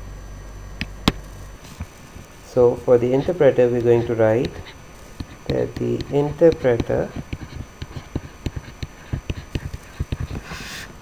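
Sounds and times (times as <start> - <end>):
stylus tapping on drawing tablet: 3.8 - 10.6.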